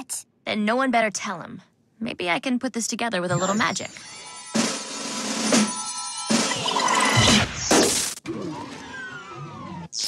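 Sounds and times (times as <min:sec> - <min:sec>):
cartoon crashing and smashing: 0:04.6 - 0:08.2.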